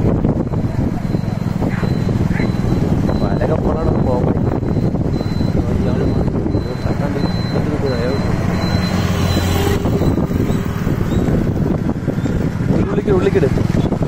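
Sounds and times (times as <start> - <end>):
motorbike engines running: 0.0 - 14.0
wind on microphone: 0.0 - 14.0.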